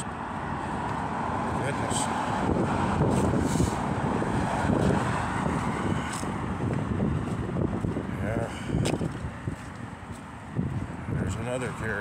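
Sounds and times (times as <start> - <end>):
cars driving past: 0.0 - 12.0
wind on microphone: 2.2 - 12.0.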